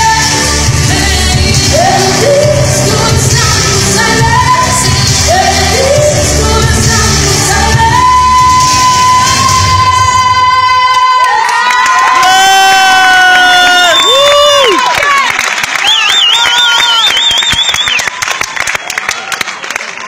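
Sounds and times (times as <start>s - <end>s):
backing track with heavy bass: 0.0s - 10.2s
crowd cheering and screaming: 7.7s - 20.0s.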